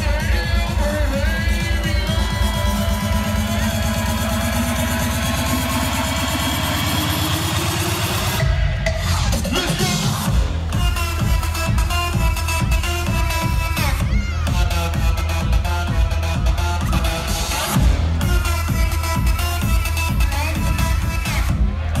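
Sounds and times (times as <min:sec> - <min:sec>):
electro house dance music: 0:00.0 - 0:22.0.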